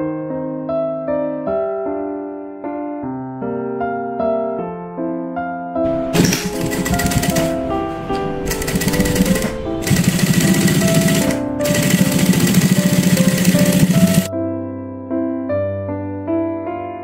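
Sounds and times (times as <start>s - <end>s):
sewing machine stitching: 5.9s - 14.3s.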